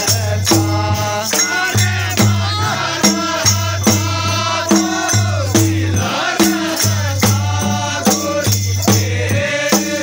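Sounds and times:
barrel drum beating: 0.0 - 10.0
group of voices singing: 0.0 - 10.0.

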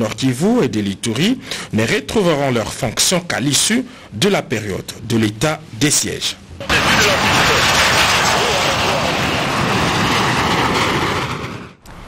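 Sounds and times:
fighter jets flying over: 6.6 - 12.0.

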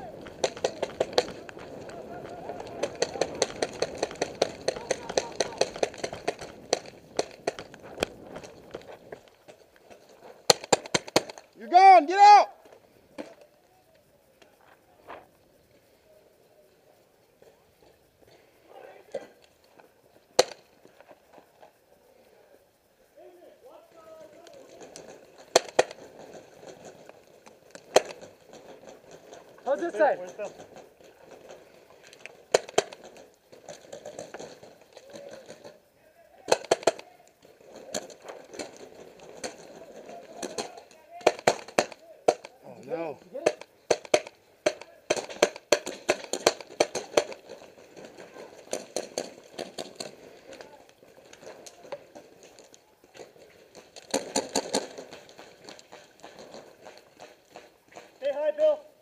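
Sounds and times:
paintball markers firing: 0.2 - 8.8, 10.5 - 11.4, 36.5 - 37.1, 37.9 - 42.6, 43.4 - 47.6.

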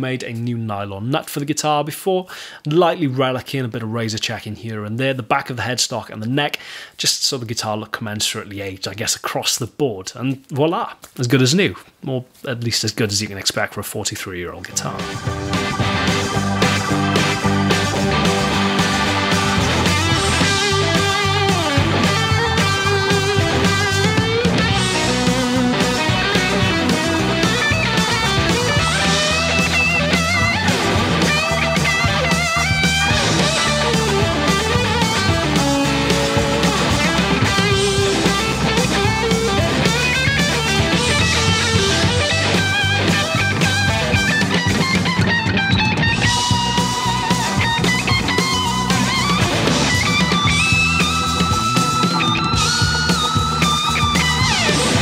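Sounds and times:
electric guitar lead with string bends: 14.7 - 55.0.

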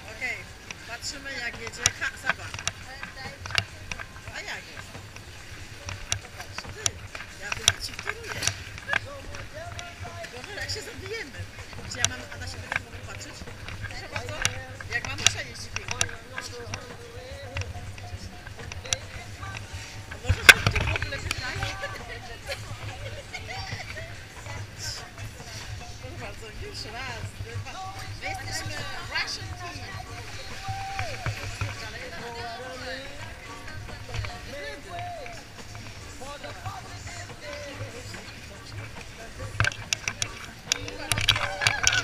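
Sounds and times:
voices chattering: 0.0 - 42.0
women laughing and exclaiming: 21.4 - 25.0, 40.8 - 42.0.

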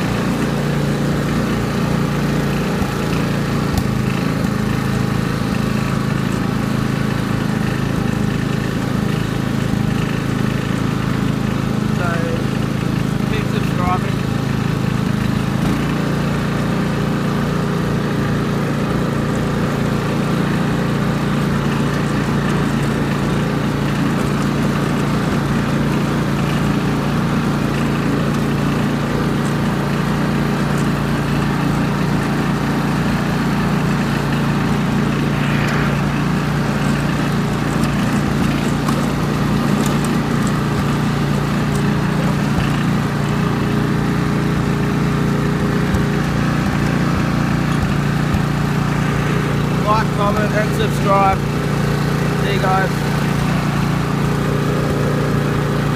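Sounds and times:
ride-on lawn mower engine running: 0.0 - 55.9.

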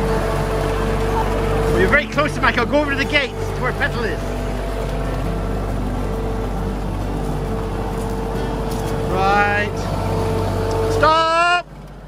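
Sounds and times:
tractor diesel engine running: 0.0 - 12.0.

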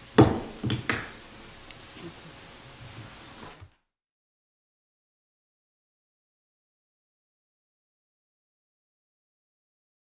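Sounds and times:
gavel knocking: 0.2 - 1.2.

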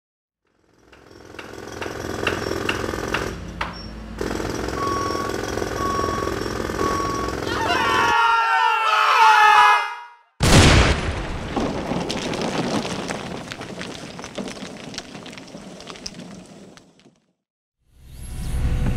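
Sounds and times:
jackhammer hammering: 0.4 - 7.5
reversing beeper beeps: 4.7 - 8.1.

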